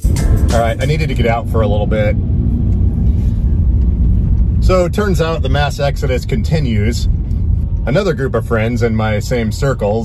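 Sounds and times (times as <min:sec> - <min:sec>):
road noise: 0:00.0 - 0:10.0
van engine rumble: 0:00.0 - 0:10.0.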